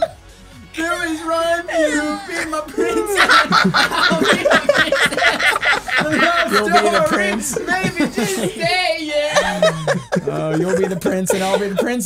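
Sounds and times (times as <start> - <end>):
people laughing hard: 1.7 - 12.0.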